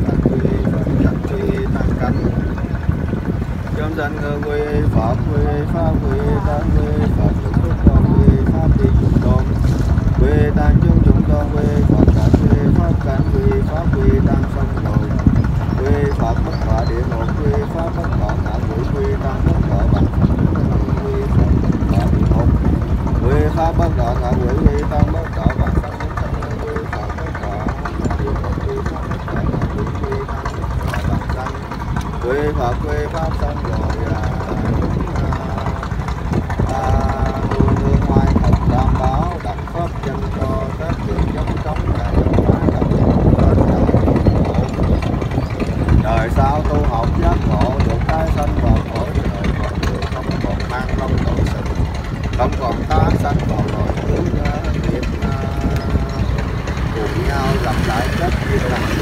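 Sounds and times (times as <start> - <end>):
steady low rumble: 0.0 - 59.0
voices reciting prayers: 0.0 - 59.0.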